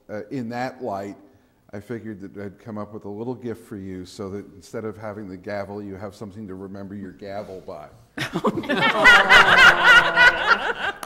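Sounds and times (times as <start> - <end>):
people laughing: 8.2 - 11.0.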